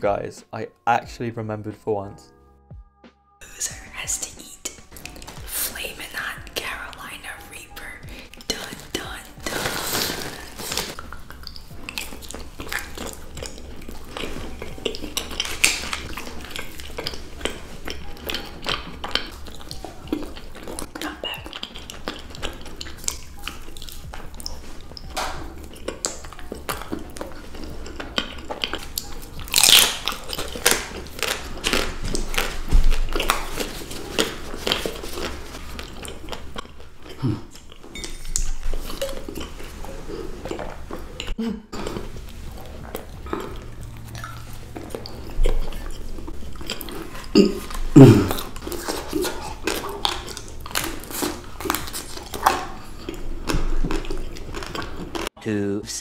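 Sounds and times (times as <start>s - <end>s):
wet mouth sounds: 3.6s - 55.3s
chocolate crunching: 8.2s - 55.3s.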